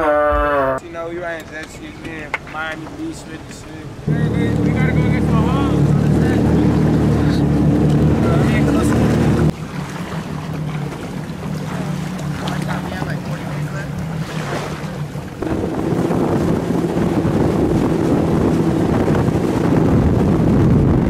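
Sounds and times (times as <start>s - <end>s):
watercraft engine drone: 0.0s - 21.0s
wind buffeting microphone: 3.9s - 21.0s.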